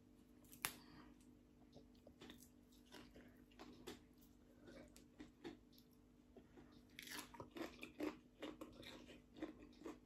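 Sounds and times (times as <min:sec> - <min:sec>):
chewing crisp food: 0:01.7 - 0:10.0.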